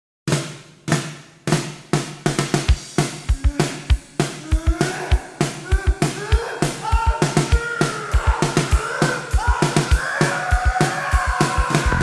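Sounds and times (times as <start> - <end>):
drum kit playing: 0.3 - 12.0
bass drum: 1.5 - 12.0.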